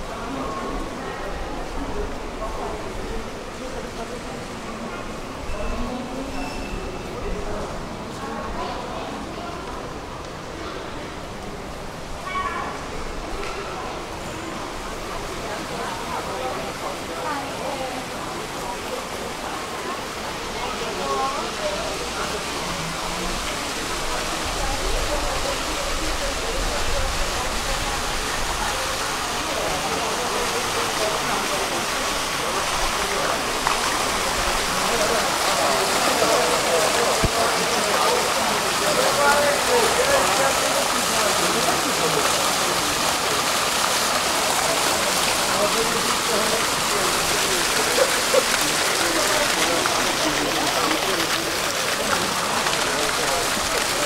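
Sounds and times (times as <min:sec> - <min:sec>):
fountain water splashing: 0:00.0 - 0:54.0
people chattering: 0:00.0 - 0:54.0.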